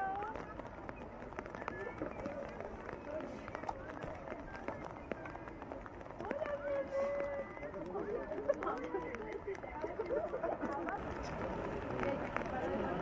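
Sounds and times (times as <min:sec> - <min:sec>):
people talking outdoors: 0:00.0 - 0:13.0.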